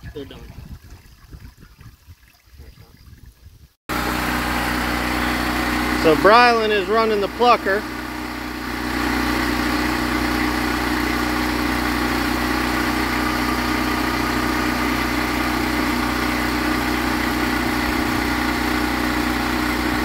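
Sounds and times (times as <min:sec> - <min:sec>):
machine drone: 0:03.9 - 0:20.0.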